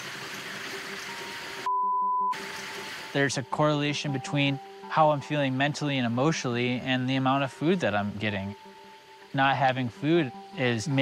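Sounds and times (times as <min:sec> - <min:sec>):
river hissing: 0:00.0 - 0:01.7, 0:02.3 - 0:03.6
censor bleep: 0:01.7 - 0:02.4.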